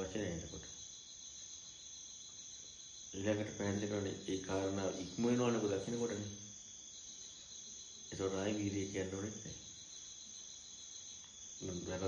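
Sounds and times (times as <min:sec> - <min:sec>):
man speaking: 0:00.0 - 0:00.7, 0:03.2 - 0:06.4, 0:08.1 - 0:09.6, 0:11.6 - 0:12.0
crickets chirring: 0:00.0 - 0:12.0.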